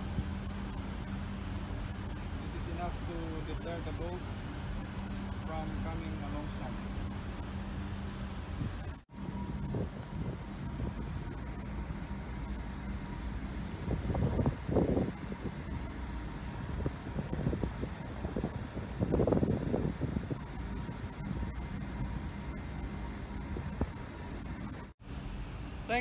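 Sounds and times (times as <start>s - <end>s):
fire hose spraying water: 0.0s - 25.0s
wind buffeting microphone: 8.2s - 22.6s.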